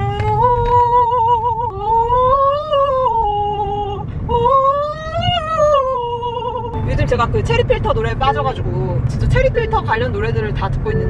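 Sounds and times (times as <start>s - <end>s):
woman singing without words: 0.0s - 6.8s
car cabin rumble: 0.0s - 11.0s.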